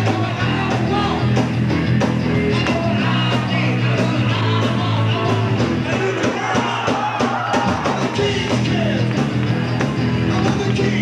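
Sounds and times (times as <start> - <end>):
drum hits: 0.0 - 10.7
live rock band: 0.0 - 11.0.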